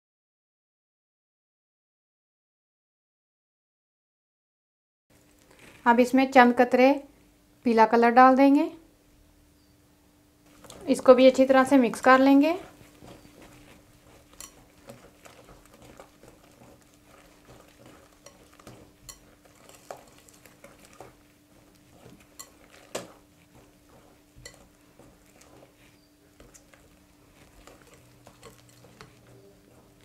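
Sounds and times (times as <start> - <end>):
whisk stirring batter: 10.4 - 30.0.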